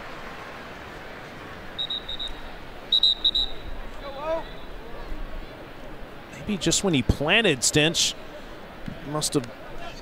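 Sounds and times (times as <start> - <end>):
stadium noise hiss: 0.0 - 10.0
shrill whistle blasts: 1.8 - 3.7.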